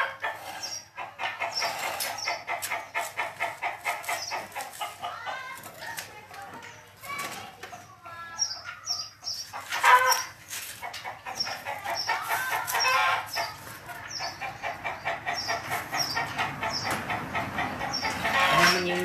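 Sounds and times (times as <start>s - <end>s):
birds chirping: 0.0s - 19.0s.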